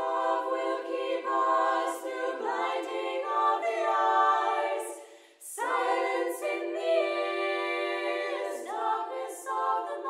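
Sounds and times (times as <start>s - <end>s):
a cappella choir singing: 0.0s - 10.0s.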